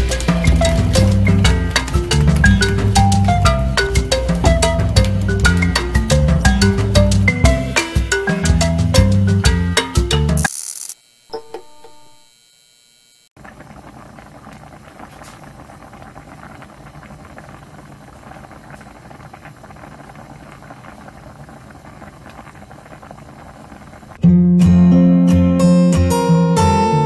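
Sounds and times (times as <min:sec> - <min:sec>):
soup boiling and bubbling: 0:00.0 - 0:09.8, 0:13.4 - 0:24.2
background music: 0:00.0 - 0:10.5, 0:24.2 - 0:27.0.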